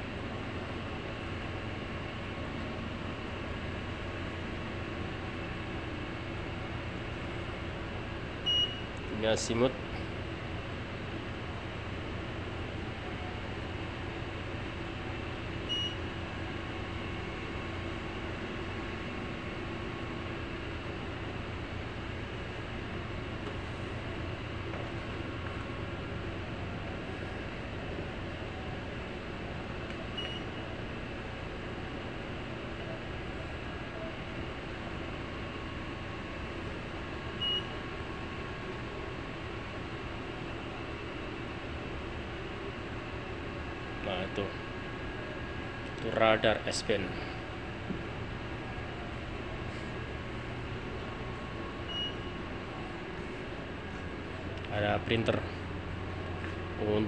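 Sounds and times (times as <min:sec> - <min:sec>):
machinery and ventilation hum: 0:00.0 - 0:57.0.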